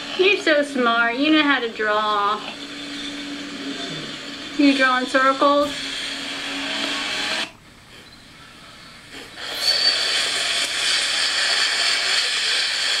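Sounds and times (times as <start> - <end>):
loud steady hissing: 0.0 - 7.6, 8.4 - 13.0.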